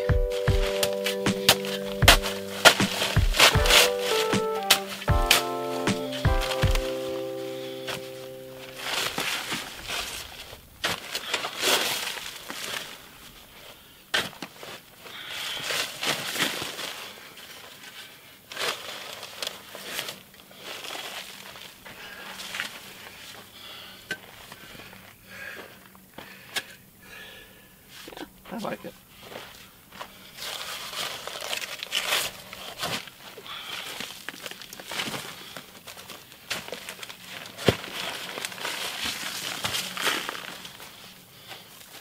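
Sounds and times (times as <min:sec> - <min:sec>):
shovel scraping dirt and gravel: 0:00.0 - 0:13.0
gravel tipping onto paper bags: 0:30.4 - 0:42.0.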